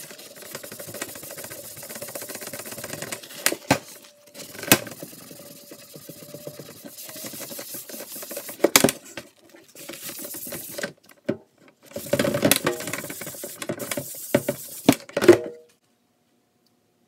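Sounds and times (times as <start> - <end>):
paper towel scrubbing plastic: 0.0 - 10.8, 11.9 - 15.1.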